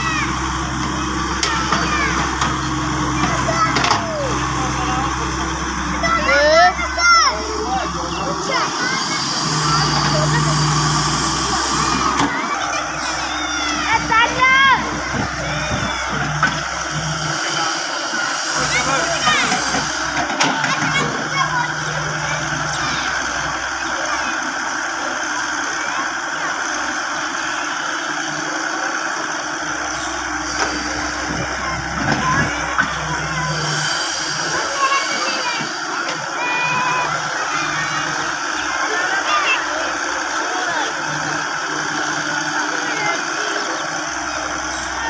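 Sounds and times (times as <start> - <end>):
diesel engine under load: 0.0 - 45.0
hydraulics working: 0.0 - 45.0
steady hum: 29.5 - 45.0.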